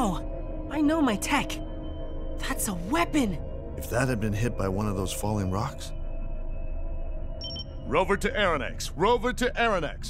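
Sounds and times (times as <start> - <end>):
droning music tones: 0.0 - 10.0
short high electronic beep: 7.4 - 7.7.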